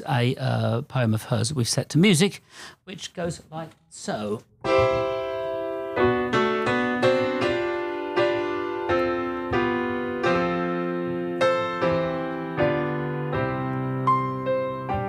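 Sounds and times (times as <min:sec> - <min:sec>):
slow piano chords: 0:04.6 - 0:15.0.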